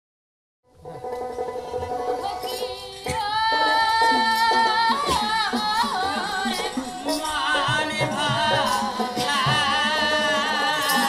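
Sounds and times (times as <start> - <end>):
plucked string instrument: 0.7 - 11.0
woman singing high folk song: 1.9 - 11.0.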